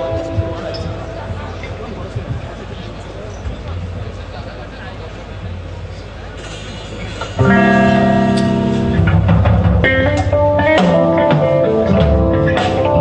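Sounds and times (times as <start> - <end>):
electric guitar: 0.0 - 2.0, 7.3 - 13.0
bass guitar: 0.0 - 4.2, 7.2 - 13.0
drum hits: 7.4 - 13.0.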